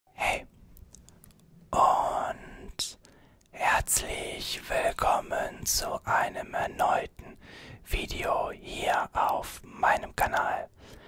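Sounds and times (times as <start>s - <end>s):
man whispering: 0.1s - 1.1s, 1.7s - 11.0s.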